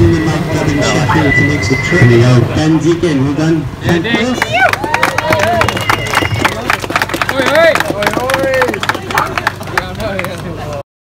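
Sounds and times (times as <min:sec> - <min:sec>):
people cheering and calling out: 0:03.9 - 0:10.8
crowd clapping: 0:04.0 - 0:10.8.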